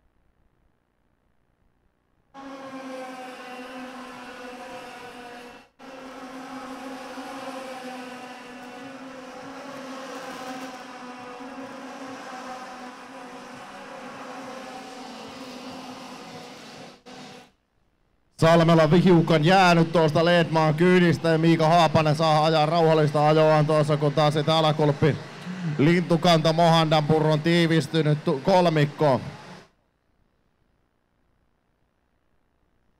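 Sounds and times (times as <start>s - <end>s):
kart engines at high revs: 2.4s - 17.5s, 18.4s - 29.7s.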